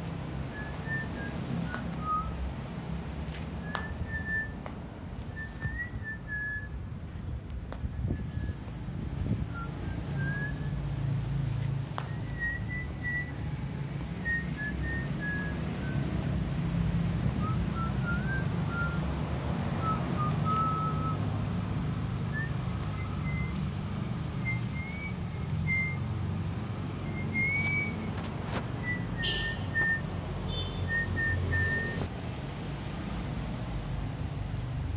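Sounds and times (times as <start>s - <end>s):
person whistling a slow tune: 0.5s - 2.4s, 3.6s - 4.6s, 5.4s - 6.8s, 9.5s - 10.8s, 12.1s - 13.6s, 14.2s - 16.1s, 17.4s - 19.0s, 19.8s - 21.2s, 22.3s - 23.6s, 24.4s - 26.1s, 27.0s - 28.1s, 28.8s - 30.1s, 30.9s - 32.0s.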